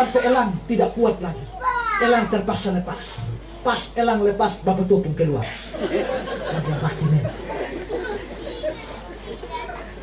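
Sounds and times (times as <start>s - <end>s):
crowd chattering: 0.0s - 10.0s
children's voices: 1.2s - 2.7s, 7.6s - 10.0s.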